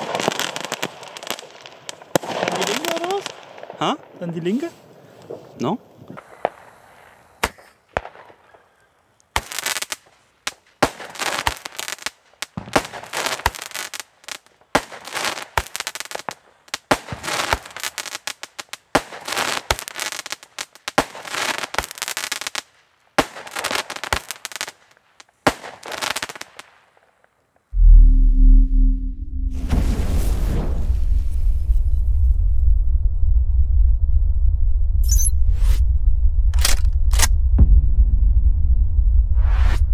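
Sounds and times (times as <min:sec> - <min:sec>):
firework battery shots cracking: 0:00.0 - 0:03.8, 0:06.2 - 0:08.5, 0:09.3 - 0:26.9.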